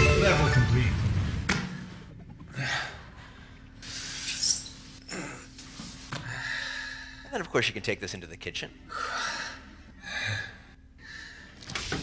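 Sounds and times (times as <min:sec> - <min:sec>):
man breathing heavily: 0:06.2 - 0:07.3, 0:08.8 - 0:11.7.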